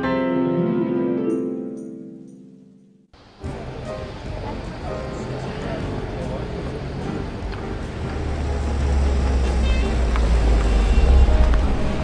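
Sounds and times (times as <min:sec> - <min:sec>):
music: 0:00.0 - 0:12.0
car engine rumbling: 0:03.2 - 0:12.0.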